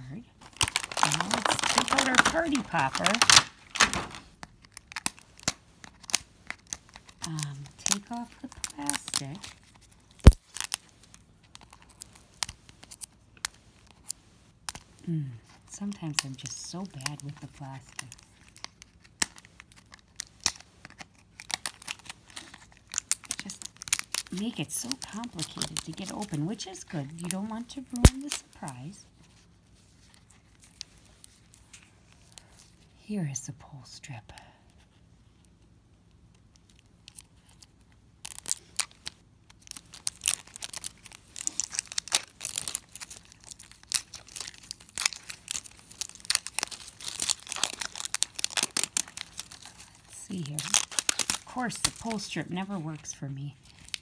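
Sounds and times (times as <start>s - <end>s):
plastic wrapping crinkling: 0.1s - 32.8s, 36.4s - 54.0s.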